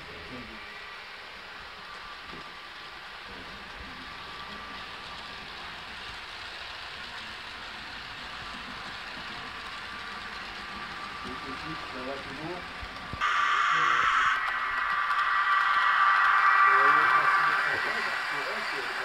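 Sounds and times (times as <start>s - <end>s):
model train rolling on track: 0.0s - 19.0s.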